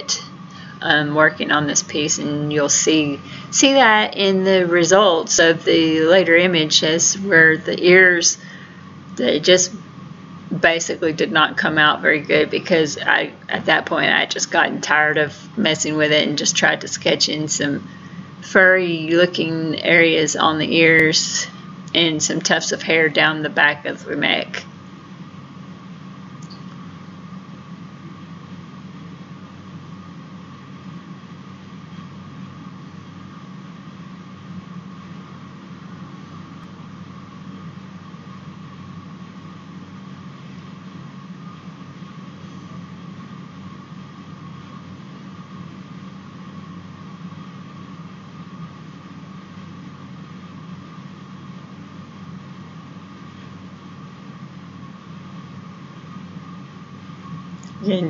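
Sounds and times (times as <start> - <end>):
background hum and hiss: 0.0 - 58.0
faint high steady tone: 0.0 - 58.0.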